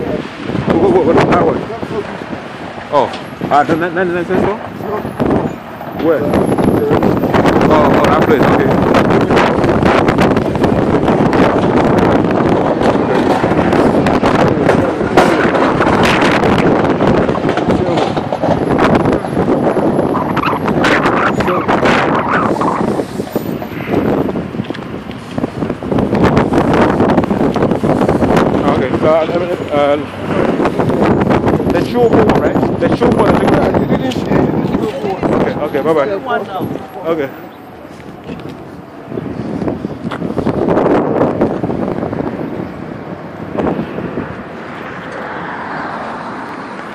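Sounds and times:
street noise: 0:00.0 - 0:46.9
wind buffeting microphone: 0:00.0 - 0:46.9.

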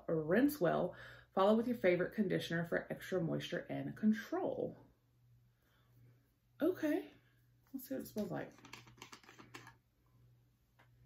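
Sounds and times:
plastic cap twisting clicks: 0:08.6 - 0:09.8.

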